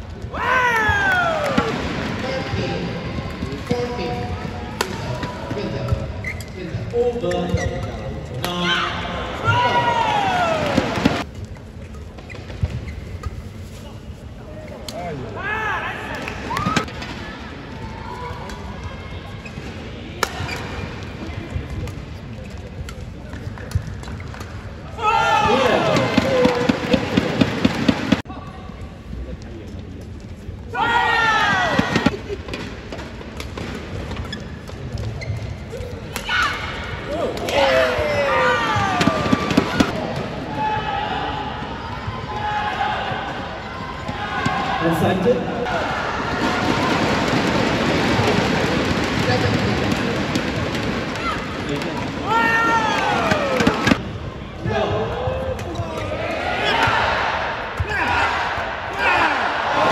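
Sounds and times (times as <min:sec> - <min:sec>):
spectators shouting and cheering: 0:00.3 - 0:01.8, 0:08.6 - 0:11.3, 0:24.9 - 0:27.4, 0:30.7 - 0:32.1, 0:36.2 - 0:49.6, 0:50.7 - 0:59.9.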